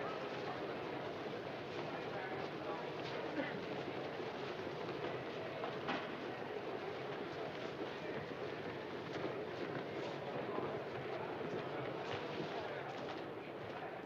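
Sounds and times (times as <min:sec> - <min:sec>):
many people talking: 0:00.0 - 0:14.0.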